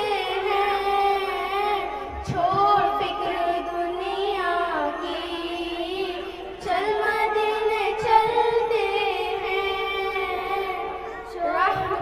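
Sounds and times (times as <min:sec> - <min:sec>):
girls singing through a pa: 0:00.0 - 0:12.0.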